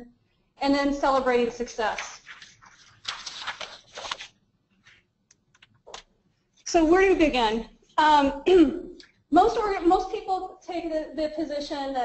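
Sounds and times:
rustling and handling noise: 1.1 - 6.4.

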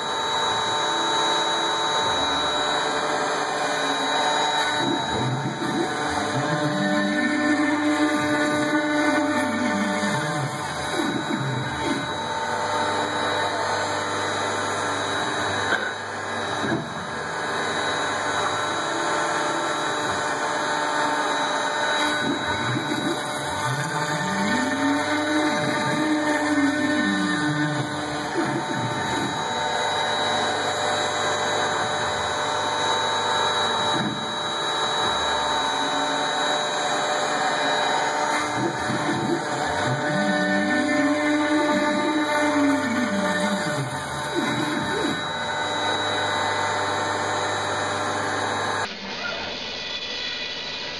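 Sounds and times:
drive motors whining in pitch: 0.0 - 49.6
router spindle whining: 0.0 - 50.7.

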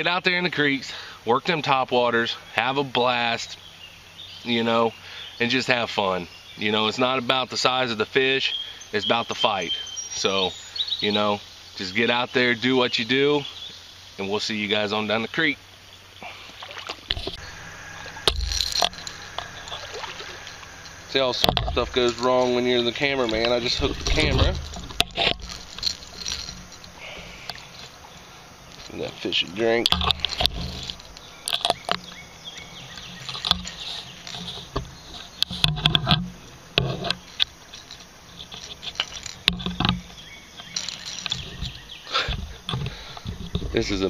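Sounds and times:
microphone handling noise: 17.1 - 22.3, 23.2 - 29.2, 29.8 - 32.2, 32.8 - 44.0
rumbling scrape: 17.1 - 44.0.

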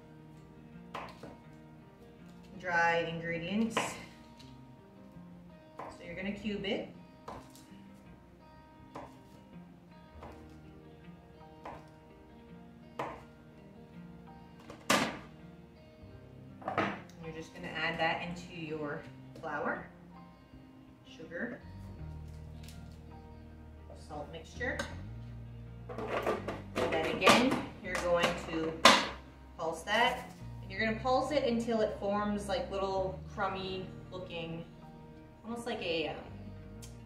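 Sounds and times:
soft background music: 0.0 - 37.0.

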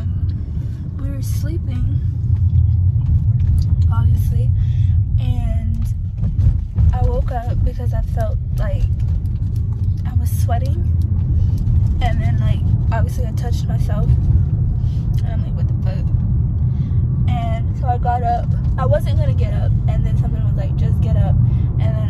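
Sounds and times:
car engine rumble and road noise: 0.0 - 22.0.

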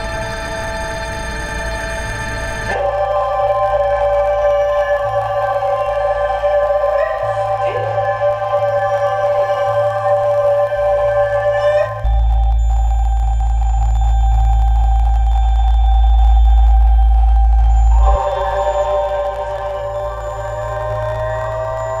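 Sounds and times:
deep bass drone: 0.0 - 22.0
electronic sustained tones: 0.0 - 22.0.

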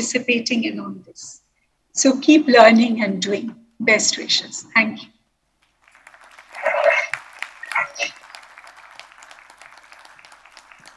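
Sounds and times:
small audience applause: 5.6 - 10.9.

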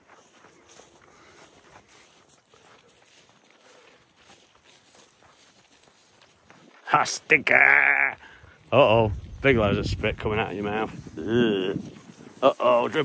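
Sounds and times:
footsteps through long grass: 0.0 - 13.0.

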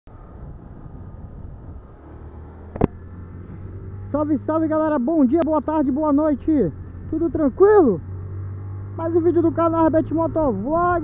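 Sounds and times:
motorcycle engine rumbling: 0.1 - 11.0.

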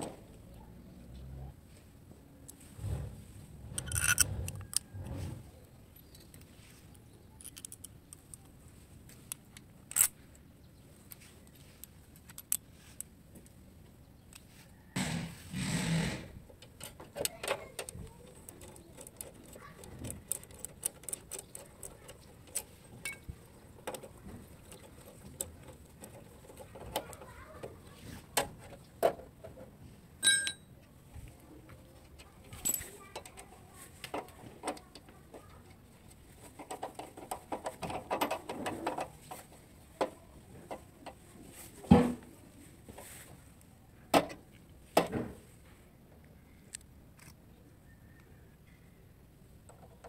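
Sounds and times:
metal parts rattling and grating: 3.6 - 5.4, 16.6 - 27.5
socket wrench clicking: 3.8 - 4.8.

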